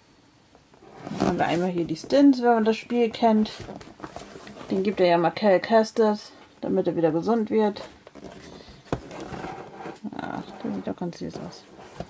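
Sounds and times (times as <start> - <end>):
soft rustling scrape: 0.7 - 5.2, 7.7 - 12.0.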